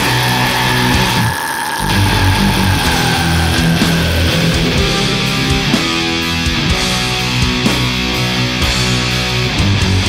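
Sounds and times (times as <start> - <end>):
black metal guitars and drums: 0.0 - 10.0.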